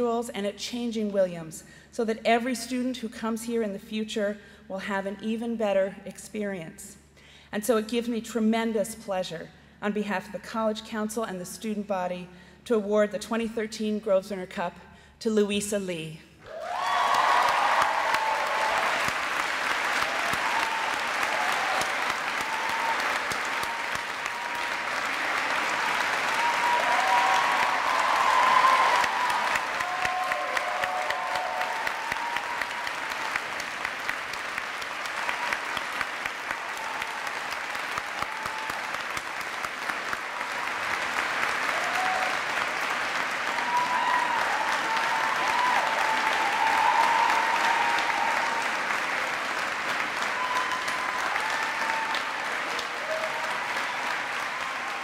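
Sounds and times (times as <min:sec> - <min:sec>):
audience cheering: 0:16.4 - 0:55.0
audience applauding: 0:16.5 - 0:55.0.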